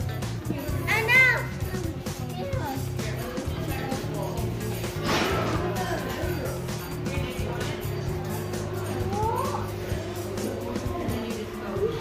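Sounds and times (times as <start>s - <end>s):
children's voices and chatter: 0.0s - 12.0s
music: 0.0s - 12.0s.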